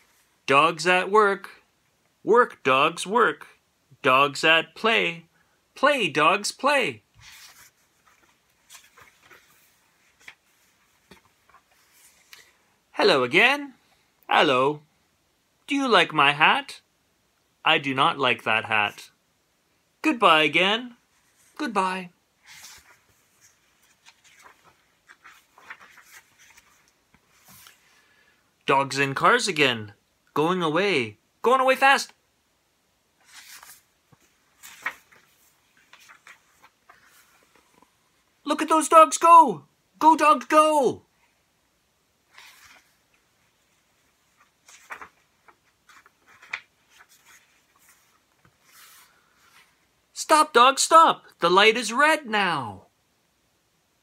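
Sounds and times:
paper pages rustling and turning: 0:07.2 - 0:12.6, 0:22.4 - 0:28.0, 0:33.2 - 0:38.0, 0:42.2 - 0:50.0.

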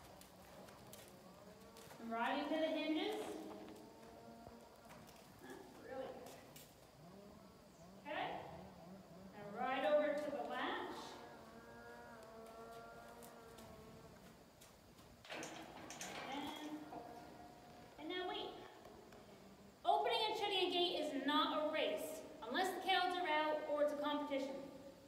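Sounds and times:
horse hooves on sand: 0:00.0 - 0:07.0.

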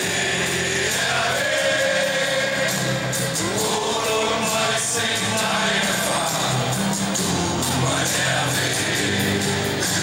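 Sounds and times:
stadium crowd singing in unison: 0:00.0 - 0:10.0.

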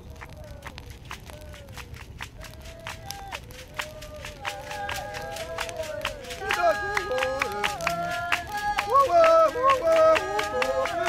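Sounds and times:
sharp rhythmic beats: 0:00.9 - 0:11.0
voices chanting in held notes: 0:02.4 - 0:11.0.

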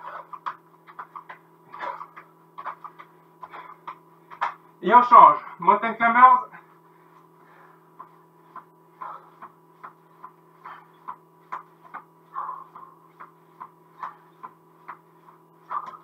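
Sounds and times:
feet tapping on foam mat: 0:00.0 - 0:04.6, 0:07.0 - 0:16.0
steady low hum: 0:00.0 - 0:16.0.

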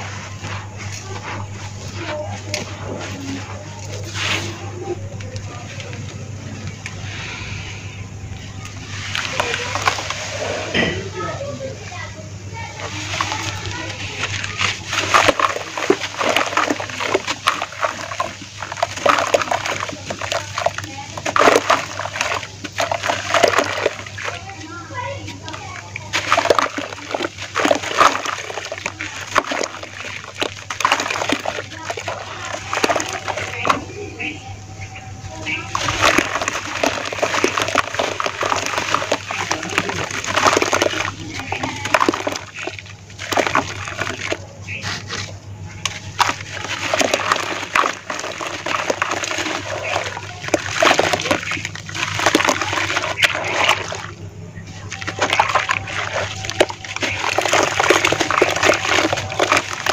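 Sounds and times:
hands crushing wet dirt in water: 0:00.0 - 0:59.9.

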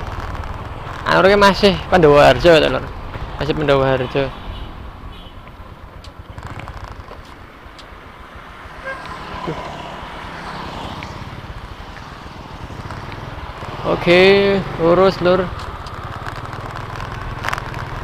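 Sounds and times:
cars and motorcycles passing: 0:00.0 - 0:18.0
traffic engine and wind rumble: 0:00.0 - 0:18.0.

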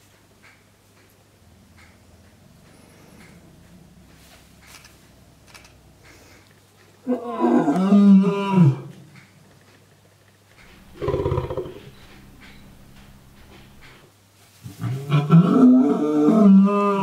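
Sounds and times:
lion roaring: 0:10.8 - 0:12.1.

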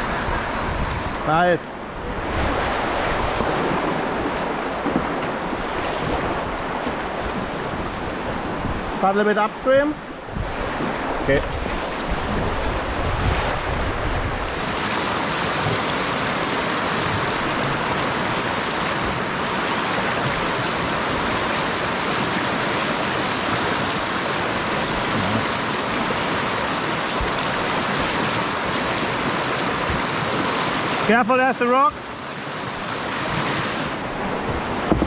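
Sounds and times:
wind rumble on microphone: 0:00.0 - 0:09.0, 0:09.8 - 0:22.6
river rapids rushing: 0:00.0 - 0:35.0.

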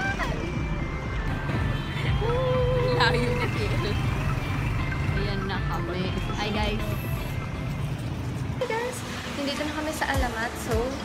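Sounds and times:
city traffic rumble: 0:00.0 - 0:11.0.

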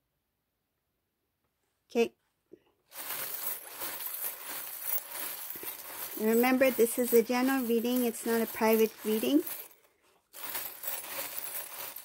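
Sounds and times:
rummaging in fabric pouch: 0:02.9 - 0:09.7, 0:10.3 - 0:12.0.

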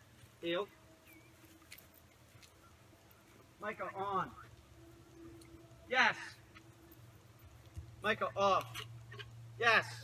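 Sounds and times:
faint ticks: 0:04.4 - 0:05.8.

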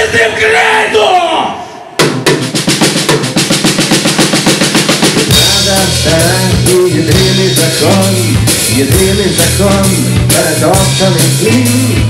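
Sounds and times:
drum roll: 0:02.0 - 0:12.0
live rock band: 0:02.0 - 0:12.0.

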